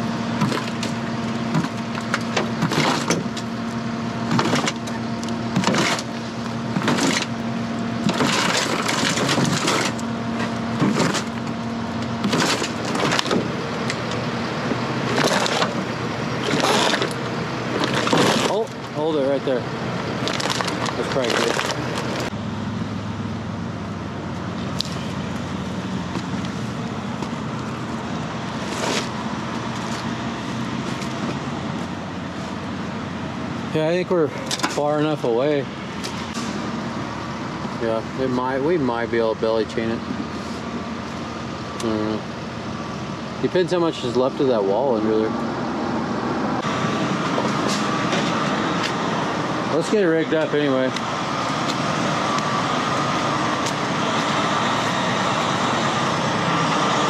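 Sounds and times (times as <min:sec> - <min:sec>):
heavy diesel equipment running: 0:00.0 - 0:57.0
cracks and crunches of debris: 0:00.4 - 0:03.5, 0:04.3 - 0:07.4, 0:08.0 - 0:14.2, 0:15.1 - 0:19.0, 0:20.1 - 0:22.3.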